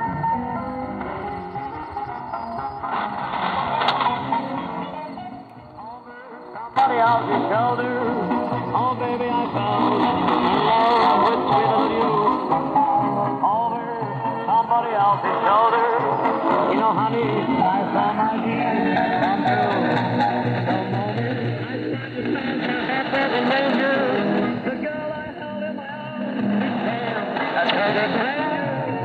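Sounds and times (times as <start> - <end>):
music on am radio: 0.0 - 29.0.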